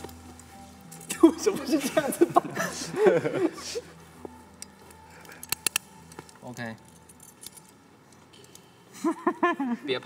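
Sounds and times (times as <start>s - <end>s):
handcuffs clinking: 4.3s - 9.0s.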